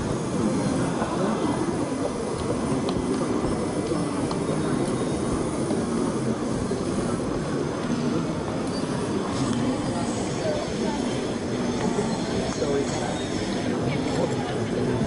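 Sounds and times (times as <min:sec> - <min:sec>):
crowd voices rumbling: 0:00.0 - 0:15.0.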